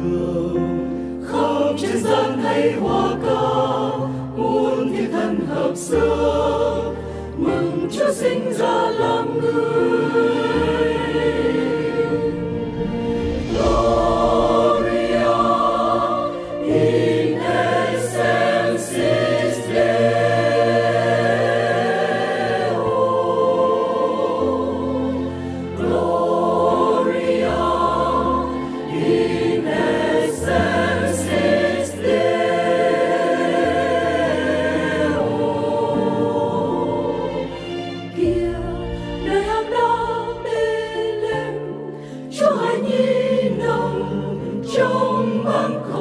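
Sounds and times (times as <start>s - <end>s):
mixed choir singing a carol: 0.0s - 46.0s
low accompaniment: 9.6s - 25.2s.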